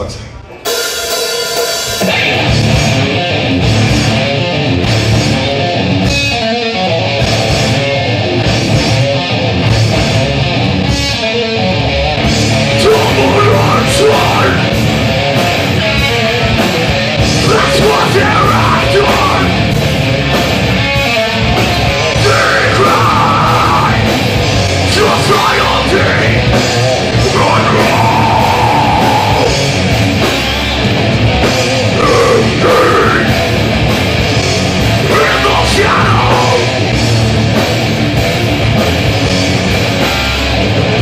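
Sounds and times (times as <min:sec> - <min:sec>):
bass guitar: 0:00.0 - 0:41.0
drum kit: 0:00.0 - 0:41.0
electric guitars: 0:00.0 - 0:41.0.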